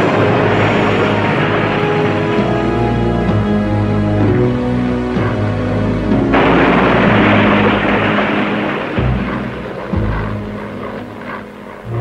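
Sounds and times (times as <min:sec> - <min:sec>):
background music: 0:00.0 - 0:12.0
propeller aircraft engine rushing: 0:00.0 - 0:12.0.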